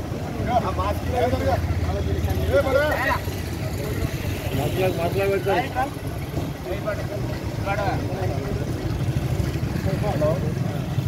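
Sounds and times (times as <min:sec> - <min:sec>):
men talking indistinctly: 0:00.0 - 0:11.0.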